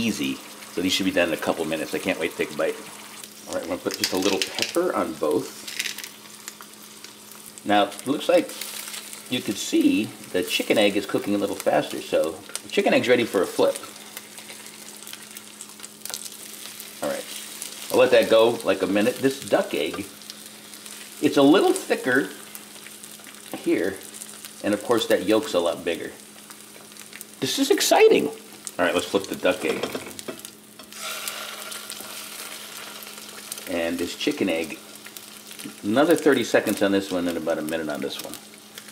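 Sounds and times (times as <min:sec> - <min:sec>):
eggs sizzling in a pan: 0:00.0 - 0:38.9.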